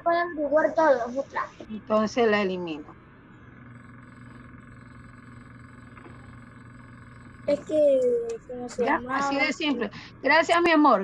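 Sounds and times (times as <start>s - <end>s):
low hum: 0.0s - 11.0s.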